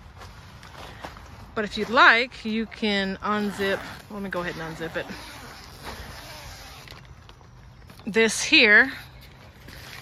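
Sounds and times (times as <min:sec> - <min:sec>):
tent zipper opening: 0:03.2 - 0:07.2, 0:09.6 - 0:10.0.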